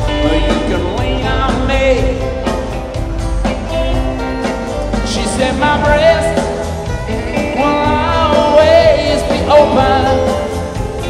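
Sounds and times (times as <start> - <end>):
man singing: 0.0 - 2.7, 4.8 - 11.0
live rock band playing: 0.0 - 11.0.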